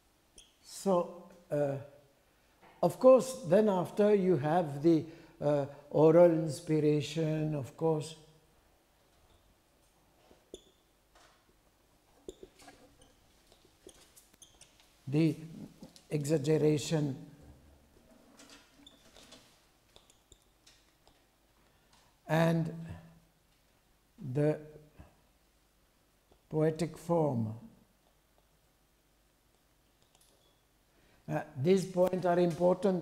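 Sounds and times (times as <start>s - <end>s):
marker pen squeaking on whiteboard: 0.4s - 0.6s, 10.2s - 11.5s, 12.1s - 16.2s, 18.0s - 21.3s, 29.9s - 30.7s.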